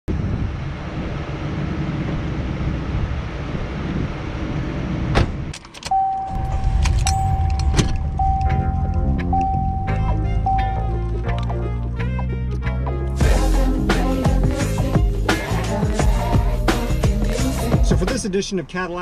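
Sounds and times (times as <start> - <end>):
car door shutting: 5.1 - 10.7
steady high tone: 5.9 - 11.5
loud low rumble: 6.3 - 12.5
music with a beat: 13.2 - 18.2.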